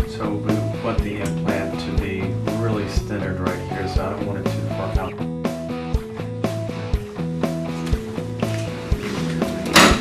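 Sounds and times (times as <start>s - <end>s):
background music chords: 0.0s - 10.0s.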